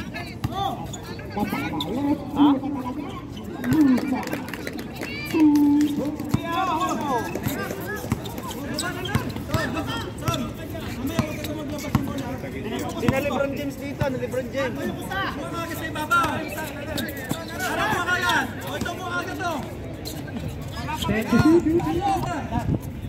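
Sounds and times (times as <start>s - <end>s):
overlapping voices chattering: 0.0s - 23.0s.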